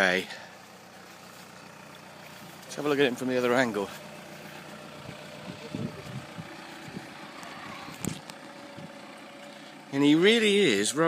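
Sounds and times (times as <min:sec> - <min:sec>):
car engine idling quietly: 0:00.0 - 0:11.0.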